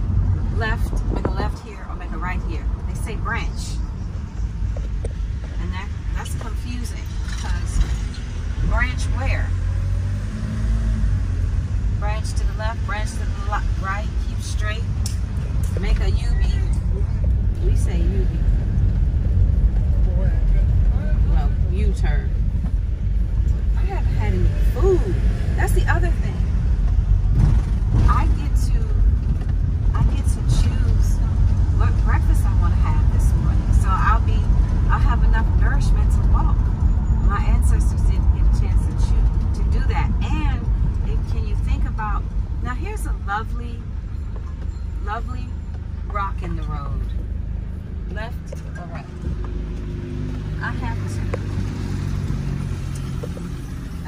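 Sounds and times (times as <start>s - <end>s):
car engine and tyre rumble: 0.0s - 54.0s
people talking: 0.5s - 3.8s, 5.5s - 8.0s, 8.6s - 9.5s, 12.0s - 18.5s, 20.1s - 22.4s, 23.8s - 26.5s, 28.0s - 29.0s, 29.9s - 43.8s, 45.0s - 45.5s, 46.1s - 47.2s, 48.1s - 49.1s, 50.6s - 51.4s.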